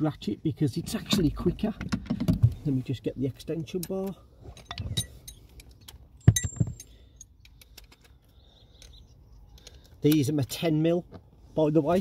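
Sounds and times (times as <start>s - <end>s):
metal tools clinking: 3.7s - 8.2s.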